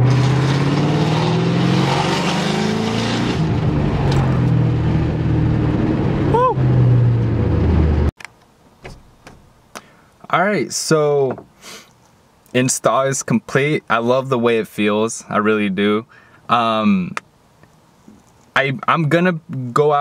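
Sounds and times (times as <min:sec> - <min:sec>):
car engine revving in cabin: 0:00.0 - 0:08.1.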